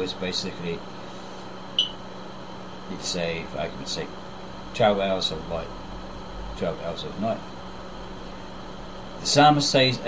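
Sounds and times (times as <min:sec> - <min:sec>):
steady low hum: 0:00.0 - 0:10.0
high-pitched chirp: 0:01.8 - 0:02.0.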